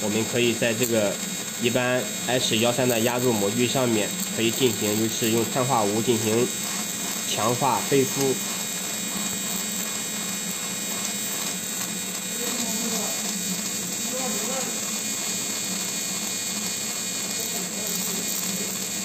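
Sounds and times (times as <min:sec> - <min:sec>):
electric motor buzzing: 0:00.0 - 0:19.0.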